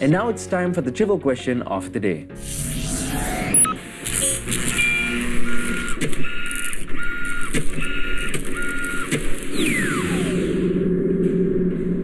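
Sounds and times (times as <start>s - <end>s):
mechanical printer-like whirring: 2.8s - 10.3s
short electronic beeps: 3.0s - 5.9s
sharp clicks: 5.5s - 9.8s.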